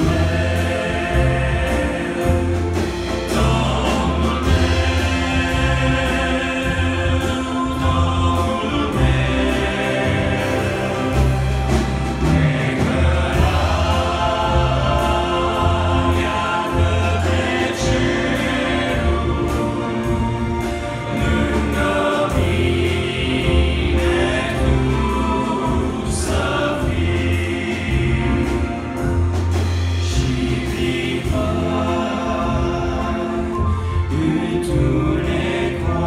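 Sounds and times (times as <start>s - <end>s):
bass guitar and keyboards: 0.0s - 36.0s
live band accompaniment: 0.0s - 36.0s
voices singing together: 0.0s - 36.0s.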